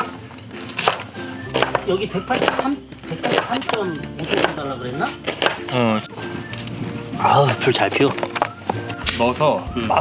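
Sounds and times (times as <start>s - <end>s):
background music: 0.0s - 10.0s
knife cutting onion on wooden board: 0.7s - 5.8s.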